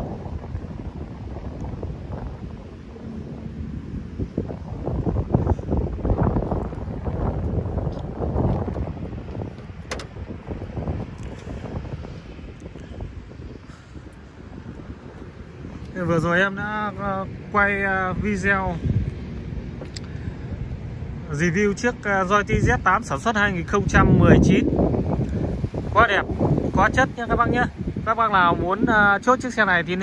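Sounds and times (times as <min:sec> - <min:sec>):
wind buffeting microphone: 0:00.0 - 0:30.0
sharp click: 0:09.9 - 0:10.2.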